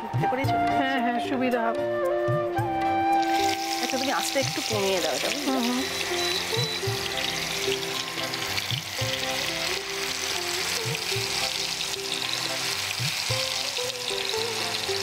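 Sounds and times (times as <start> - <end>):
background music with bass: 0.0 - 15.0
fish sizzling in oil: 3.2 - 15.0.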